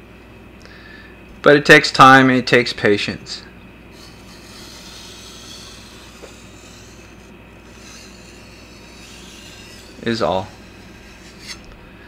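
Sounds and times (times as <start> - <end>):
steel blade rubbing on whetstone: 3.9 - 11.8.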